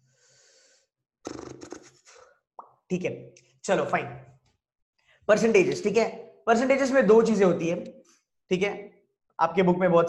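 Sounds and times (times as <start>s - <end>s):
man's throaty vocal sound: 1.3s - 2.2s
man speaking: 5.3s - 7.9s.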